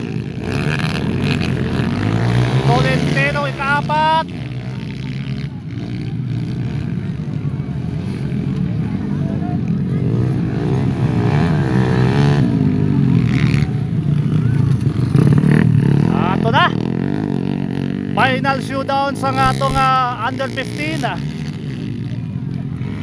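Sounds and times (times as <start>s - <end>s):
racing motorcycles revving: 0.0s - 23.0s.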